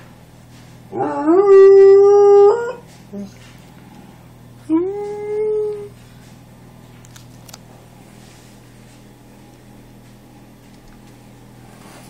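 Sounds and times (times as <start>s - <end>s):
dog howling: 0.9s - 3.3s, 4.6s - 6.0s.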